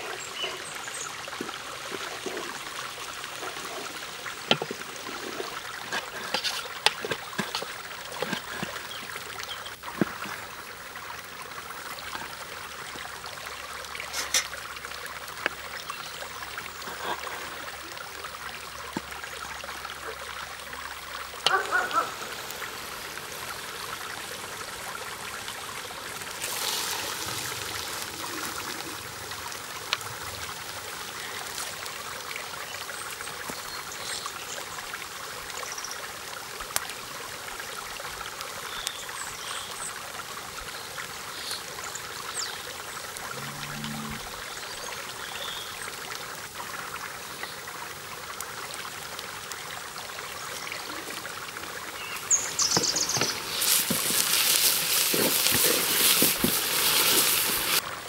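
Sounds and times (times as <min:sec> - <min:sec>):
flowing stream water: 0:00.0 - 0:58.0.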